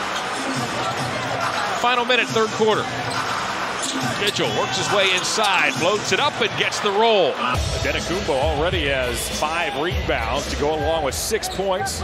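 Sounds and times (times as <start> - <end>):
arena crowd noise: 0.0 - 12.0
commentator speaking: 4.1 - 12.0.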